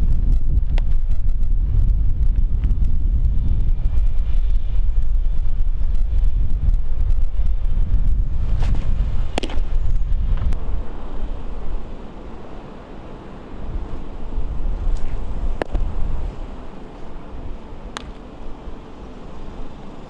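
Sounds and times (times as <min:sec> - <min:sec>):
wind buffeting microphone: 0:00.0 - 0:20.0
baseball popping into catcher's mitt: 0:08.6 - 0:09.8, 0:14.9 - 0:15.9, 0:17.9 - 0:18.2.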